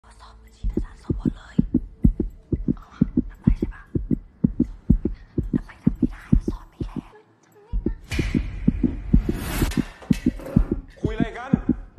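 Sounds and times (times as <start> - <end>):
heartbeat thumps: 0.6 - 7.1, 7.8 - 11.9.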